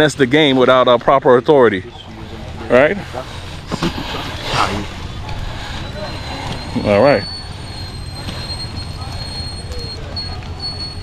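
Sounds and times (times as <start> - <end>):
distant voices: 0.0 - 11.0
low outdoor rumble: 0.0 - 11.0.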